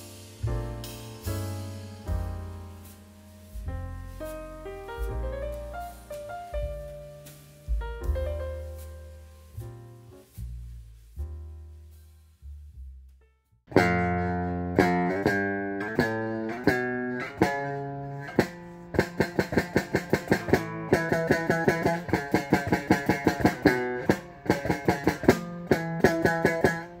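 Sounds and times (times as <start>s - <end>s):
electric guitar playing: 0.0s - 10.4s, 13.7s - 27.0s.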